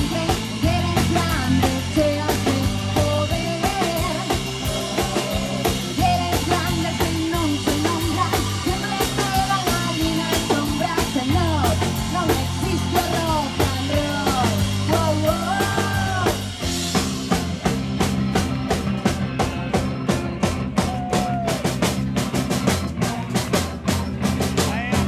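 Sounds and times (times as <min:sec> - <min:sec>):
bending lead guitar melody: 0:00.0 - 0:25.0
fast drum beat: 0:00.0 - 0:25.0
live rock band playing: 0:00.0 - 0:25.0.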